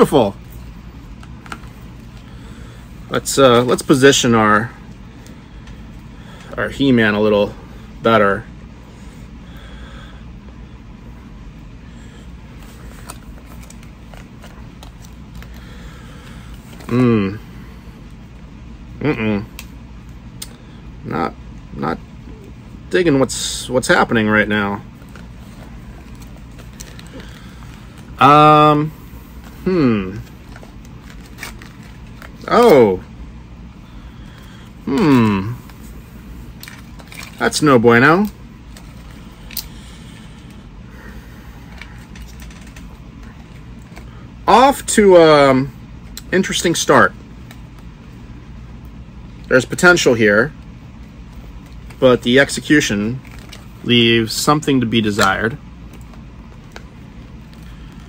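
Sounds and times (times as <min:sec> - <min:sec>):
low steady hum: 0:00.0 - 0:58.0
packaging rustling: 0:12.6 - 0:16.9, 0:25.0 - 0:28.2, 0:29.0 - 0:32.6, 0:35.6 - 0:40.5, 0:41.4 - 0:44.2, 0:53.2 - 0:53.8
person humming: 0:16.9 - 0:17.4, 0:19.0 - 0:19.5, 0:29.6 - 0:30.3, 0:34.8 - 0:35.6.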